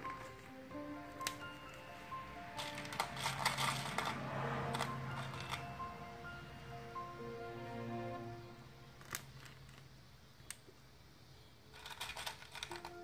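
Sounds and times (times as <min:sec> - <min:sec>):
background music with held notes: 0:00.0 - 0:09.4, 0:12.7 - 0:13.0
hard pieces rattling in plastic tub: 0:11.8 - 0:13.0.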